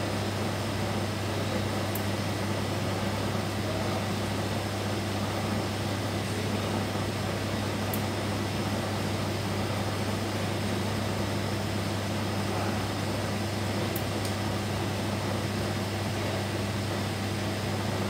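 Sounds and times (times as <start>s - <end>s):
machine hum with fan and pump: 0.0s - 18.0s.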